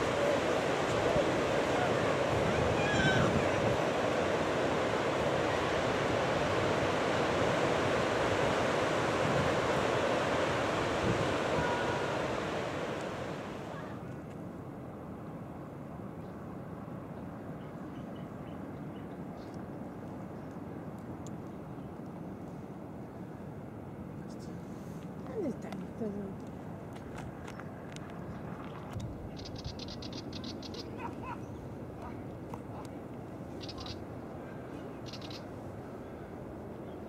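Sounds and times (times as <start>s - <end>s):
wind buffeting microphone: 0.0s - 13.8s
ocean surf: 0.0s - 18.8s, 29.4s - 37.0s.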